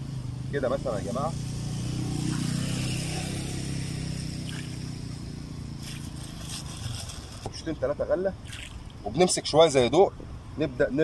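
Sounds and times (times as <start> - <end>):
vehicle engine running: 0.0 - 8.3
plastic bag rustling: 5.8 - 7.6.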